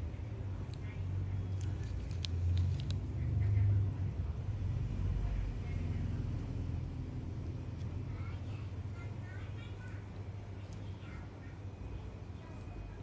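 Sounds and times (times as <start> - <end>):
faint voices: 7.8 - 13.0.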